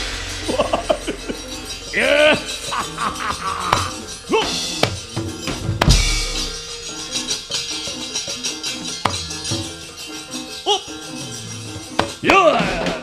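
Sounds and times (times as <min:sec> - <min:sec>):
drumming: 0:00.0 - 0:13.0
gamelan metal-keyed tones: 0:00.0 - 0:13.0
vocal cry: 0:00.4 - 0:05.0, 0:10.6 - 0:13.0
sharp knocks and metal plate clacks: 0:03.7 - 0:07.0, 0:11.9 - 0:13.0.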